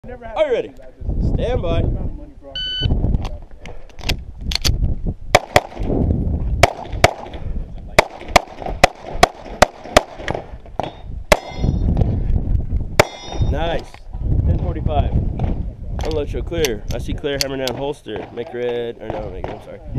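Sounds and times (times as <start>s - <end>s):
pistol shots: 5.3s - 5.9s, 6.6s - 7.4s, 8.0s - 11.6s, 13.0s - 13.4s
steel targets ringing: 10.8s - 11.8s, 13.0s - 13.5s.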